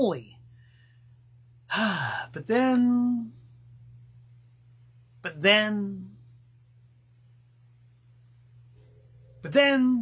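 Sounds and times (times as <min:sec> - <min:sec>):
man speaking: 0:00.0 - 0:00.3, 0:01.7 - 0:03.3, 0:05.2 - 0:06.1, 0:09.4 - 0:10.0
faint high hiss: 0:00.0 - 0:10.0
low electrical hum: 0:00.0 - 0:10.0.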